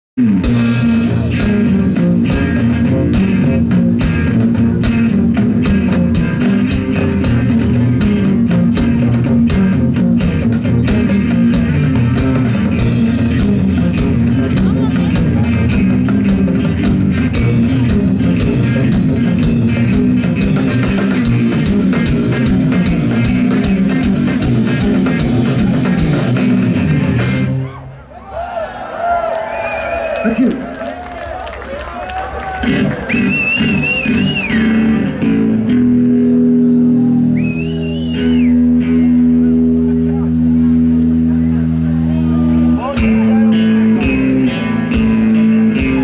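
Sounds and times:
drum kit beats: 0.2 - 27.8, 32.3 - 46.0
electric guitar: 0.2 - 28.0, 29.8 - 46.0
heavy low end: 0.2 - 28.0, 32.6 - 46.0.

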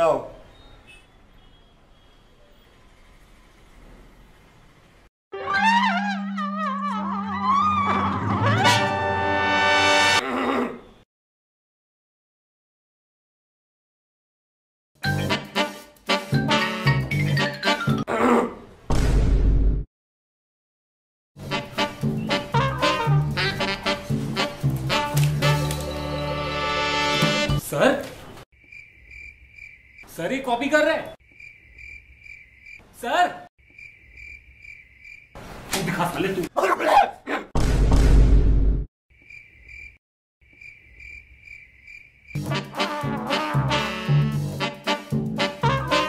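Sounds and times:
crickets chirping: 28.6 - 32.9, 33.6 - 35.4, 39.1 - 42.4.

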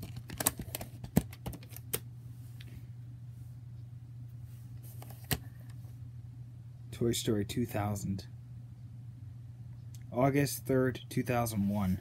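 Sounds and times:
plastic cassette case clicks: 0.0 - 2.0
steady low hum: 0.0 - 12.0.

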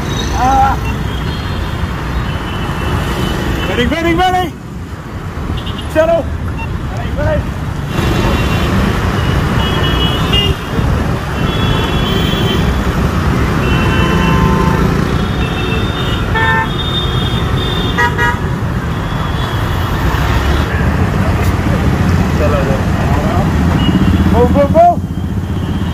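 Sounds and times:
motorbike and car engines: 0.0 - 25.9.

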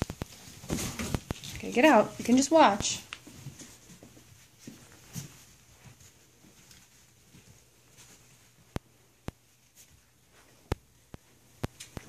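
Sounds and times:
puppy paws scratching on bedding: 0.0 - 12.0.

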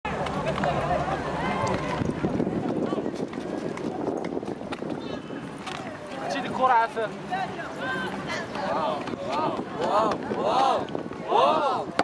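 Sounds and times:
young people chattering: 0.1 - 12.0.

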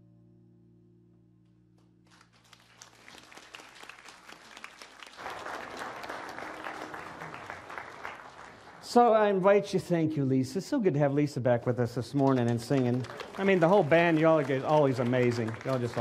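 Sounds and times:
audience applause: 2.1 - 9.6, 12.0 - 16.0.

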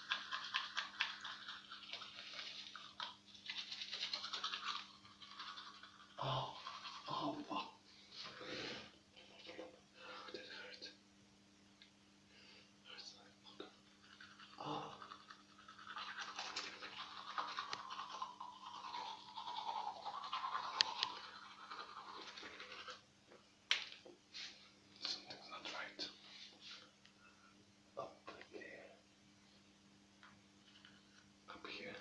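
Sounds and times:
toothbrush scrubbing teeth: 0.0 - 7.6, 13.6 - 23.0
steady low hum: 0.0 - 32.0.

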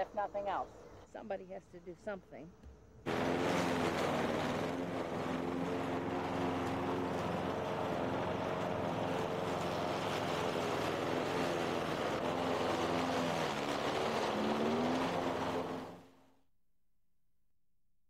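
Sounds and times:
lawn mower engine cutting grass: 3.1 - 16.2.

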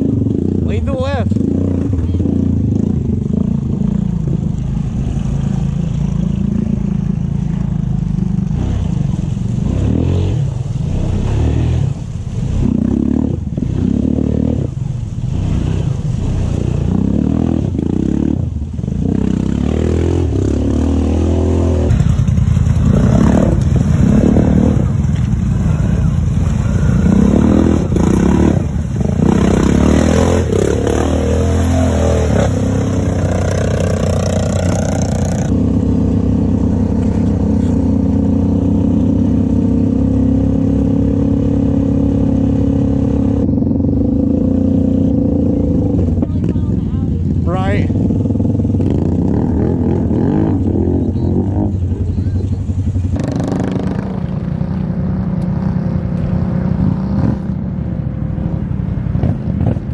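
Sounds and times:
splashing through muddy water: 0.0 - 47.4, 48.0 - 57.6
atv engines revving: 0.0 - 59.9
quads riding on gravel: 21.9 - 30.5.

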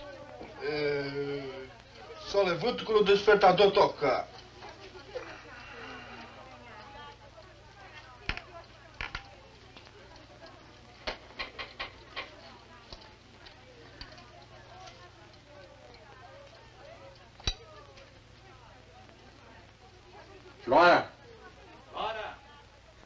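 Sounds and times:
faint film soundtrack hum: 0.0 - 23.0.

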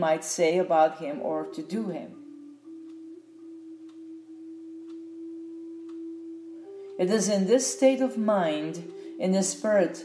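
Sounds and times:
sustained pure tone music: 0.0 - 10.0.

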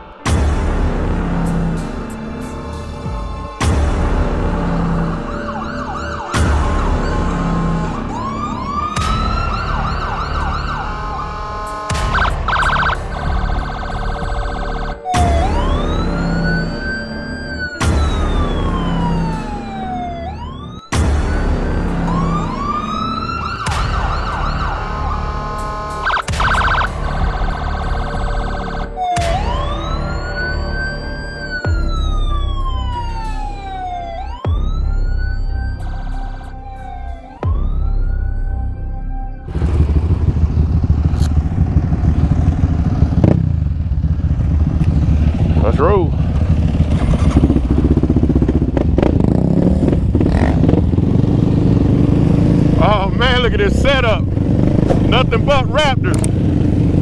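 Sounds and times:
electronic music with synth glides: 0.0 - 43.9
quad bike engine running: 39.5 - 52.9, 53.6 - 55.1.

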